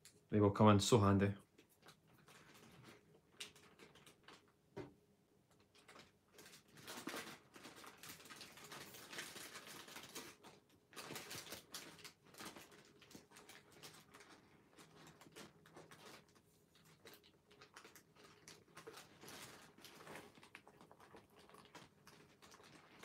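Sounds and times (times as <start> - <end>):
paper rustling and crinkling: 1.6 - 4.5, 5.6 - 23.0.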